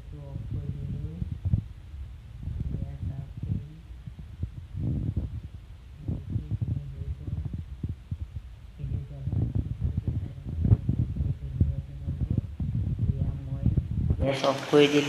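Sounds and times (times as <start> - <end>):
woman talking: 0.0 - 1.4, 2.4 - 4.0, 6.0 - 7.9, 8.8 - 14.4
thumping and rubbing on microphone: 0.4 - 14.4.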